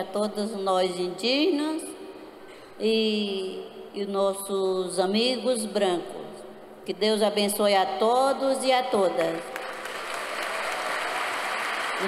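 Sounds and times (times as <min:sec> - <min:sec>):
audience applauding: 0:09.5 - 0:12.0.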